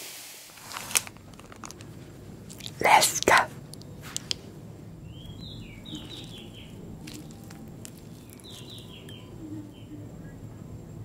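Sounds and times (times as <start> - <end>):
person whispering into microphone: 2.5 - 3.6.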